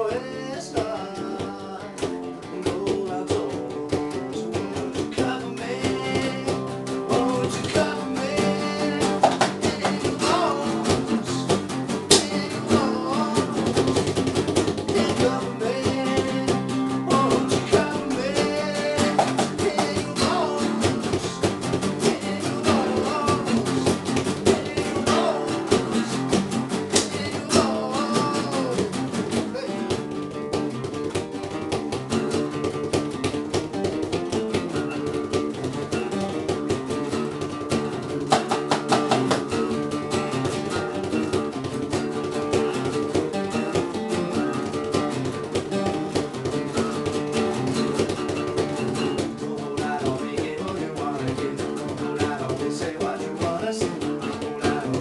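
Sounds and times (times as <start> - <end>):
acoustic guitars strumming: 0.0 - 55.0.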